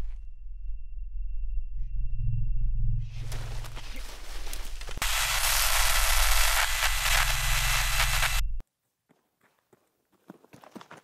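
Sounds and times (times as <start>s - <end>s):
electronic static hissing: 4.9s - 8.6s.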